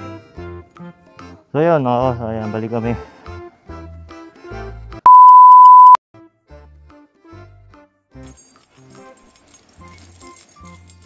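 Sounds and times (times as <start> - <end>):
electronic beep: 5.1 - 6.0.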